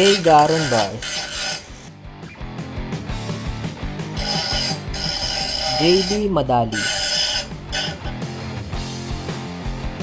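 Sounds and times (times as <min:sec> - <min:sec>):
angle grinder cutting metal: 0:00.0 - 0:02.0, 0:04.1 - 0:08.6.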